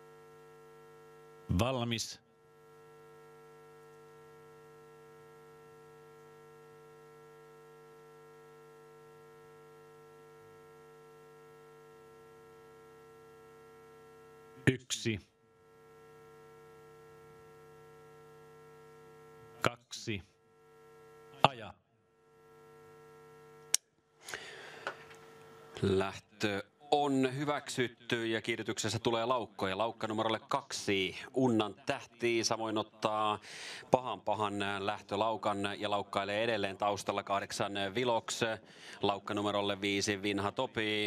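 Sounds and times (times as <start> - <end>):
electrical mains hum: 0.0 - 41.0.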